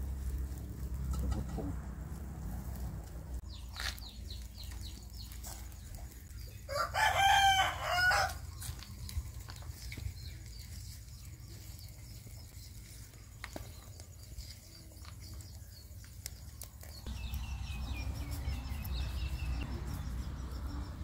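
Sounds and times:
rooster crowing: 0:06.7 - 0:08.5.

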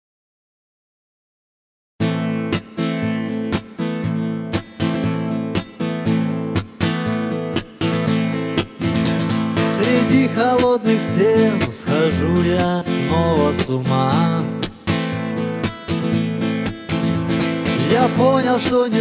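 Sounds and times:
acoustic guitar strumming: 0:02.0 - 0:19.0.

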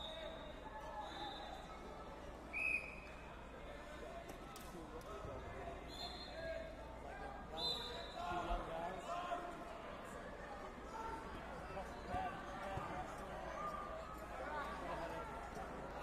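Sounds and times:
crowd chatter echoing in hall: 0:00.0 - 0:16.0.

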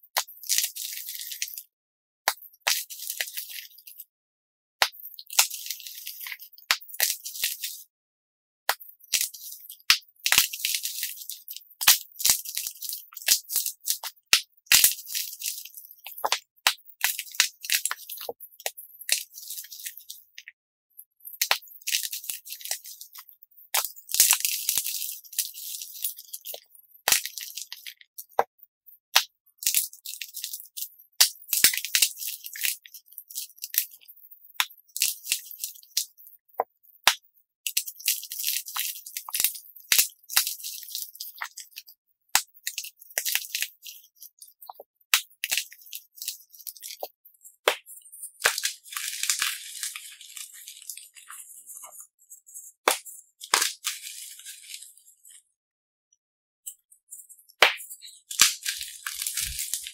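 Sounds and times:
chalk crunching and crackling: 0:00.2 - 0:01.7, 0:02.3 - 0:04.1, 0:04.9 - 0:07.9, 0:08.7 - 0:20.5, 0:21.2 - 0:28.5, 0:29.2 - 0:36.4, 0:37.7 - 0:55.4, 0:57.1 - 0:59.9.

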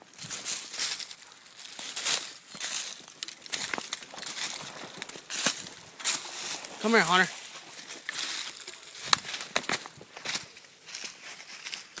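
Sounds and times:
footsteps crunching dry leaves: 0:00.0 - 0:12.0.

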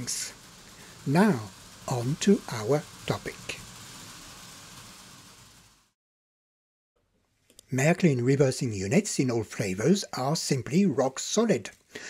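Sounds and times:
model train rolling on track: 0:00.0 - 0:06.0.

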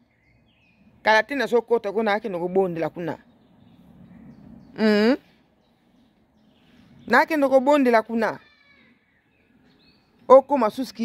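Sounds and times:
person speaking: 0:04.8 - 0:05.4.

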